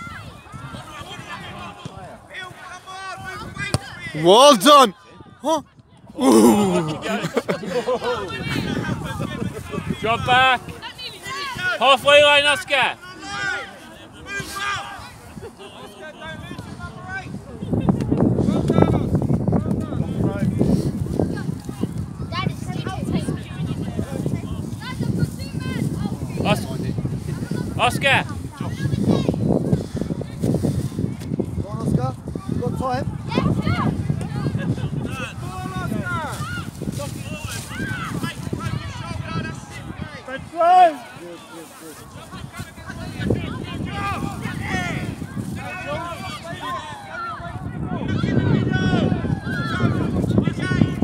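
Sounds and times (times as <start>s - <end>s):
voices calling out: 0.0s - 17.0s
person shouting: 6.2s - 7.2s.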